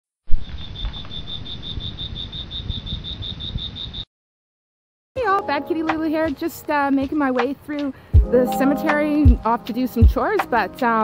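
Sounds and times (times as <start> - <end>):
cricket chirping: 0.3 - 4.1.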